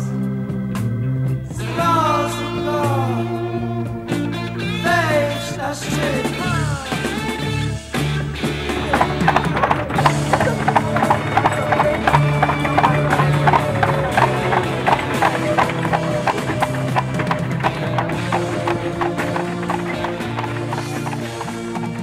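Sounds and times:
background music: 0.0 - 22.0
hooves clip-clopping on asphalt: 7.9 - 22.0.

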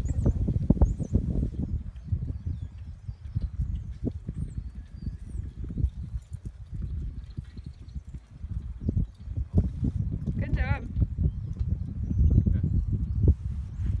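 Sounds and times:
hooves thudding on sandy dirt: 0.0 - 14.0.

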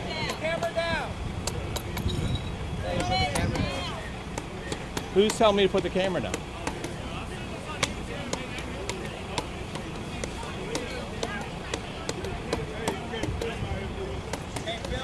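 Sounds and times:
faint background voices: 0.0 - 15.0
outdoor noise: 0.0 - 15.0
sharp clicks and knocks: 1.4 - 2.4, 4.3 - 7.0, 7.7 - 13.6.

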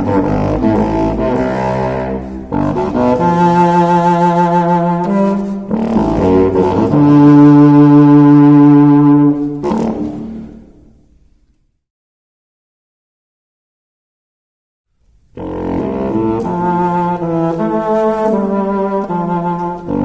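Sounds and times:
contrabassoon low held notes: 0.0 - 10.6, 15.4 - 20.0.

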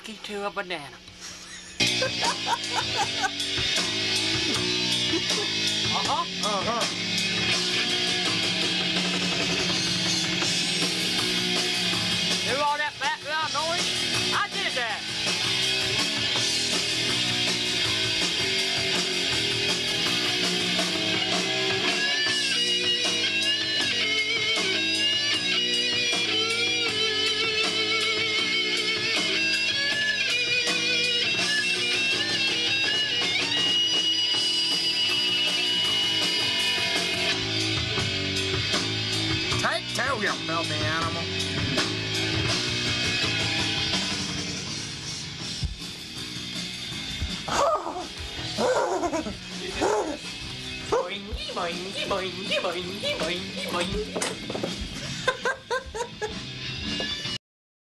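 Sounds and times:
background music: 0.0 - 57.4
electric guitar lead with bent notes: 1.8 - 57.4.

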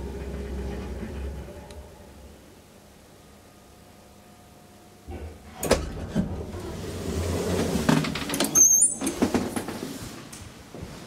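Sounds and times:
elevator doors rumbling: 0.0 - 2.6, 5.1 - 9.9
door squeaking: 8.2 - 9.3.

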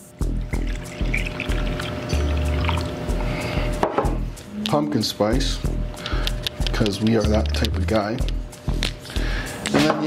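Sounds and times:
background music with bass: 0.0 - 10.0
water pouring into bowl: 0.2 - 3.4.

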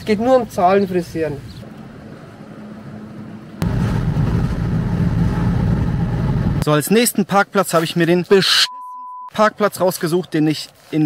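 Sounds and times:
car engine and road noise: 0.0 - 6.7.

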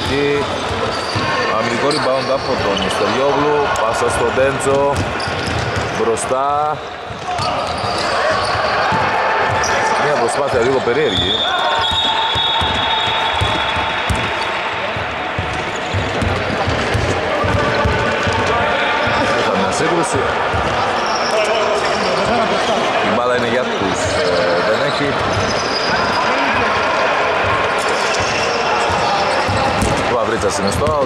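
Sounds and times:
players calling out: 0.0 - 31.0
basketball bouncing on hardwood: 11.8 - 18.5, 28.9 - 30.0.

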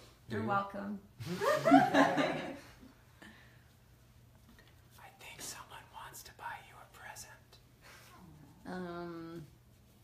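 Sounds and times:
man whispering softly: 4.9 - 7.7.

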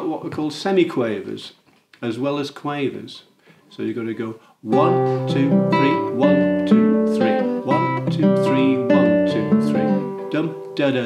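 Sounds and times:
classical guitar fingerpicking: 4.7 - 10.8.

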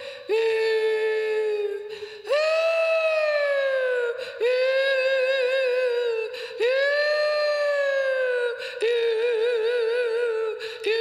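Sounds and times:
woman singing long wordless note: 0.0 - 11.0.

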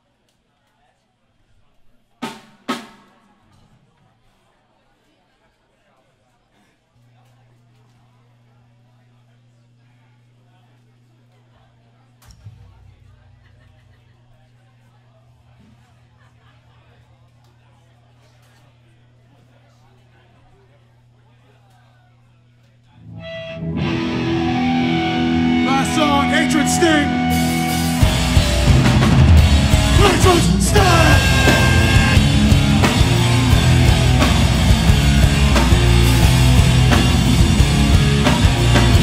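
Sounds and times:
faint crowd chatter: 0.0 - 39.0
amplifier hum: 23.0 - 39.0
distorted electric guitar: 23.0 - 39.0.

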